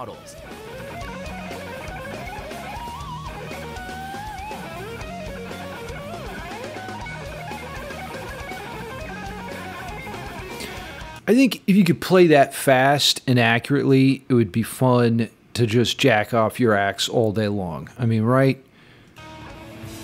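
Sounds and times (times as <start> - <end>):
electric guitar shred lead: 0.0 - 11.3, 19.2 - 20.0.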